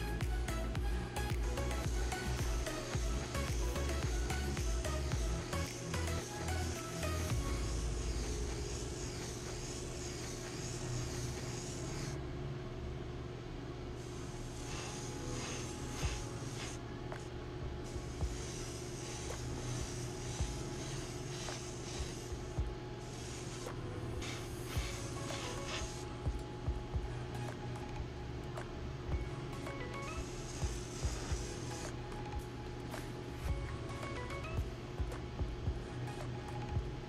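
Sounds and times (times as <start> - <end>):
background music: 0.0 - 12.1, 14.8 - 37.0
airbrush spraying hiss: 0.0 - 12.2, 14.0 - 26.2, 29.6 - 33.2
steady low hum: 0.0 - 37.0.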